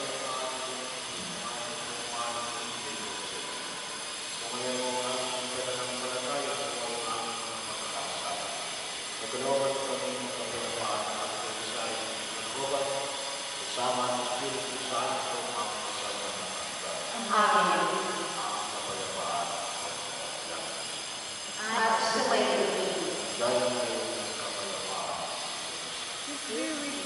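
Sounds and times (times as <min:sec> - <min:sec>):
steady background hiss: 0:00.0 - 0:27.0.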